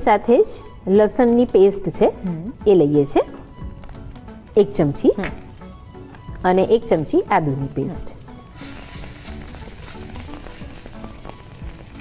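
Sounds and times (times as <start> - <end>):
food sizzling in frying pan: 5.4 - 12.0.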